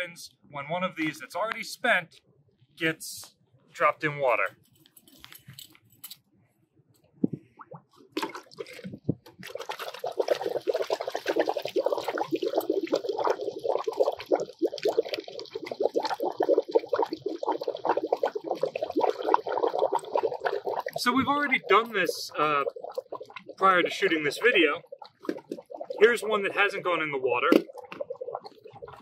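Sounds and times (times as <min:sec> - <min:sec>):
water bubbling: 0:07.2 - 0:29.0
canister dropped into water: 0:08.1 - 0:09.6, 0:27.4 - 0:28.0.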